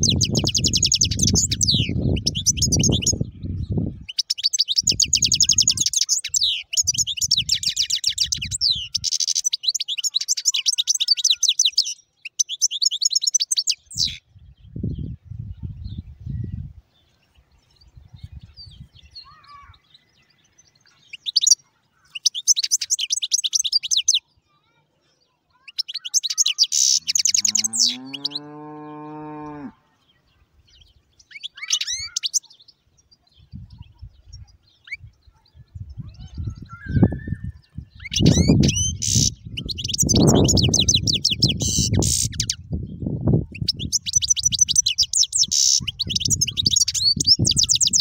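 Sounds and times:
finch twittering: 0.0 - 3.2, 31.3 - 32.5, 38.0 - 42.6, 43.6 - 48.0.

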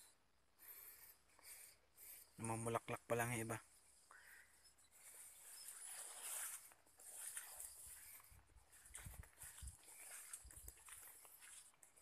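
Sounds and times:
footsteps on muddy soil: 5.1 - 12.0.

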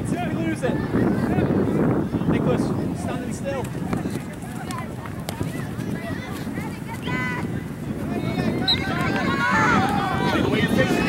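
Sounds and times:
people shouting and calling: 0.0 - 11.0.

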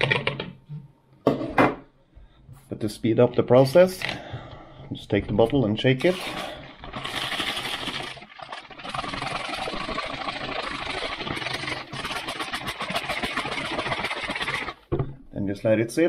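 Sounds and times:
liquid sloshing in shaken bottle: 6.0 - 14.9.

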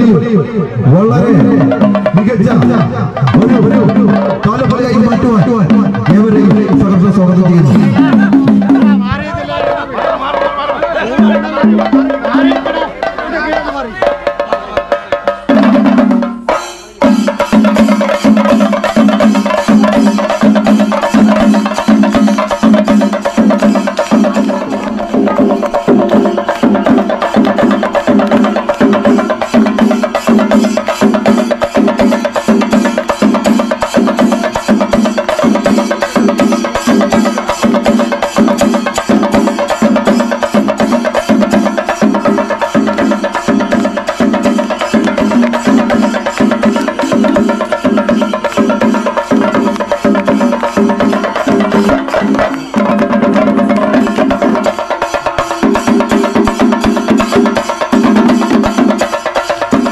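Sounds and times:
drums beaten with sticks: 0.0 - 59.9.

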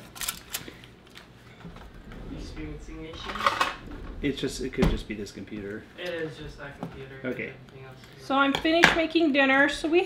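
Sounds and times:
kitchen utensils clattering: 2.4 - 4.8.

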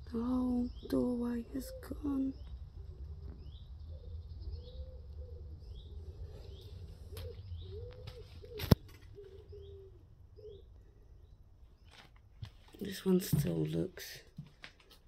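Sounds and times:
small bird chirping: 0.1 - 12.0
pigeon cooing: 1.5 - 11.1.

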